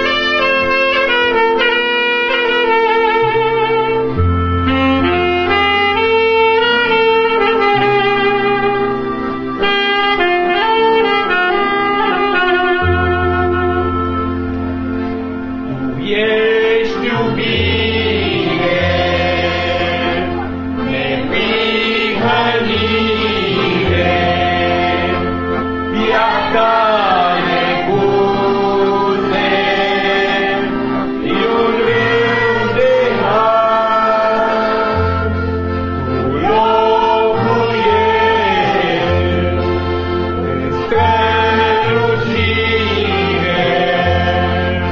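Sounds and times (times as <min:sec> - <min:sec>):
keyboard bass notes: 0:00.0 - 0:44.9
congregation singing a hymn: 0:15.7 - 0:44.9.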